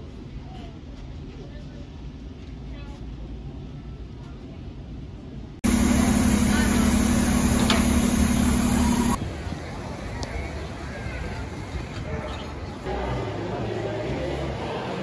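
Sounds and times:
bus engine humming: 0:05.6 - 0:09.2
faint voices: 0:05.7 - 0:15.0.

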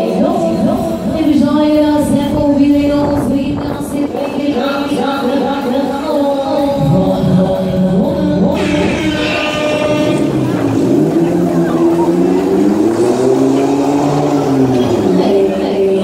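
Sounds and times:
fairground ride droning tones: 0:00.0 - 0:16.0.

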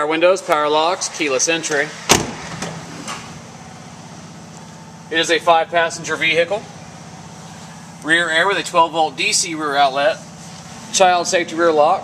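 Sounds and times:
engine idling: 0:00.5 - 0:12.0
truck door thump: 0:02.1 - 0:03.3.

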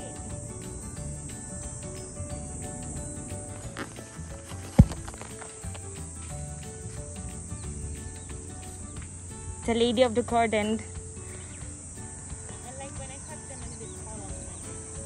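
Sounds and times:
insects droning: 0:00.0 - 0:15.0.

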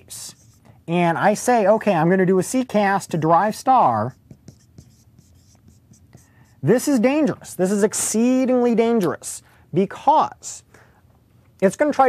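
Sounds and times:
marker writing on whiteboard: 0:00.0 - 0:01.6, 0:02.7 - 0:07.6.

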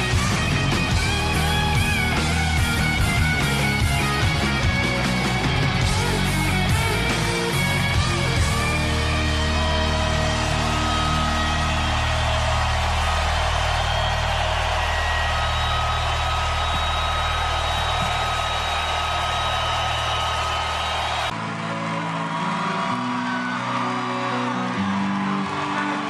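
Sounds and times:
rock music: 0:00.0 - 0:26.0.

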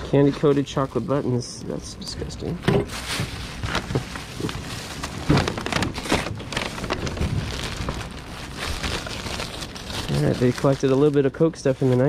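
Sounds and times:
packing wrap crinkling: 0:02.9 - 0:12.0.

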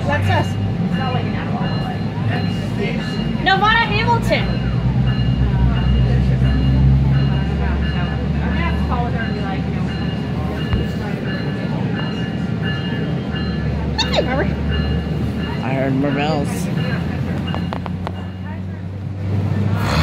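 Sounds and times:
people talking: 0:00.0 - 0:14.8, 0:15.4 - 0:20.0
train engine rumble: 0:00.0 - 0:20.0.

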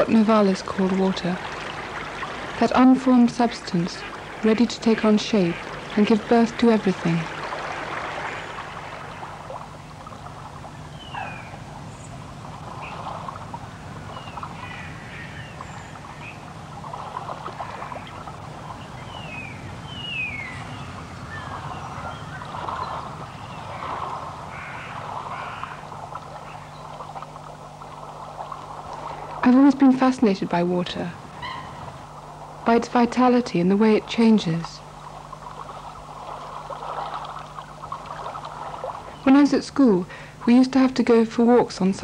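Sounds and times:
steady low hum and hiss: 0:00.0 - 0:42.0.

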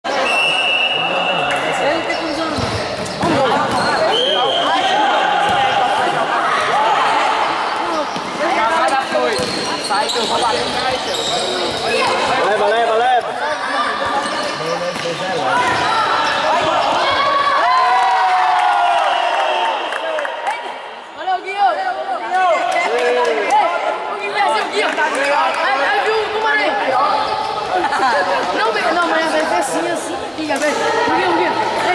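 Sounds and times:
voices shouting in a hall: 0:00.0 - 0:31.9
ball bouncing on hard court: 0:02.5 - 0:04.0, 0:09.3 - 0:09.9.

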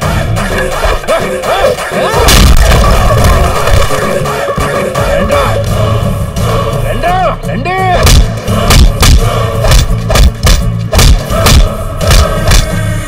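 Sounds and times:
film score music: 0:00.0 - 0:13.0
punch and hit sound effects: 0:02.2 - 0:04.0, 0:08.0 - 0:12.7.

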